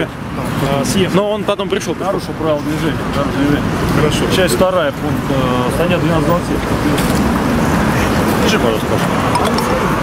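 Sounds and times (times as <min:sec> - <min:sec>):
people talking: 0:00.0 - 0:07.3, 0:08.0 - 0:10.0
road traffic rumble: 0:00.0 - 0:10.0.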